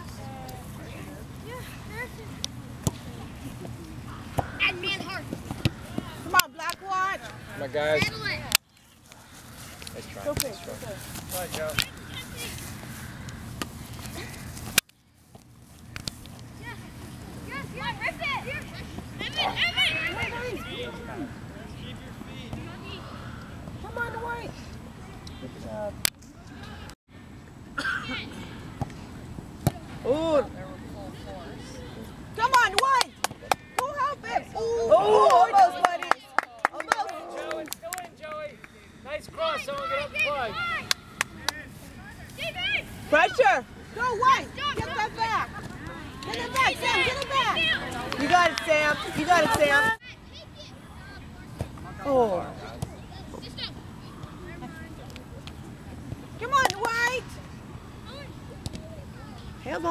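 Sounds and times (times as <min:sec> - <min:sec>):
faint voices outdoors: 0:00.0 - 0:14.8, 0:16.5 - 0:59.9
people shouting: 0:33.9 - 0:35.8
sharp claps: 0:40.8 - 0:41.6.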